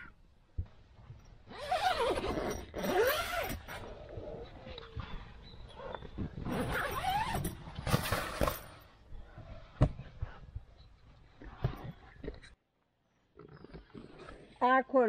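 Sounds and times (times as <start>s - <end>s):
tent fabric rustling: 1.0s - 10.4s
zipper pulled open: 1.5s - 4.8s, 5.7s - 8.8s, 13.4s - 14.7s.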